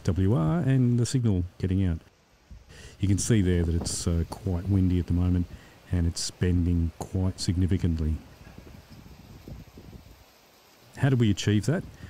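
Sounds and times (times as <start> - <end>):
wind gusting on microphone: 2.4 - 10.4, 11.5 - 12.0.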